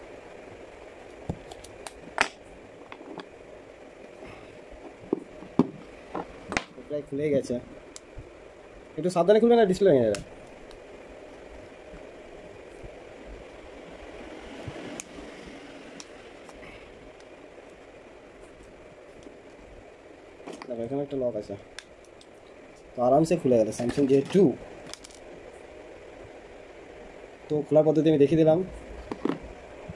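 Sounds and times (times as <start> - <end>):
steady background noise: 0.0 - 29.9.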